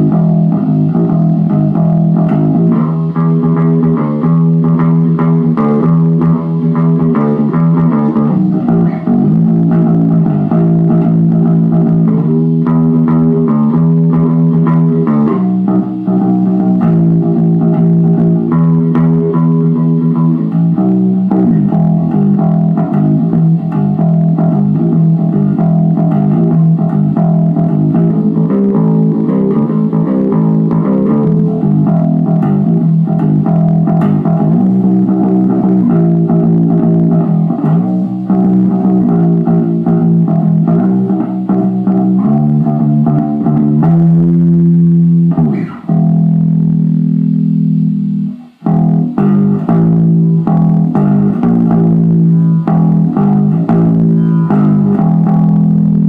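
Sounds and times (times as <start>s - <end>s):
plucked bass line: 0.0s - 56.0s.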